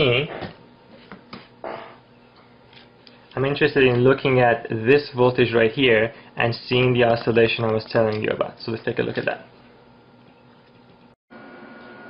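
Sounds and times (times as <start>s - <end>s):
person speaking: 3.2s - 9.7s.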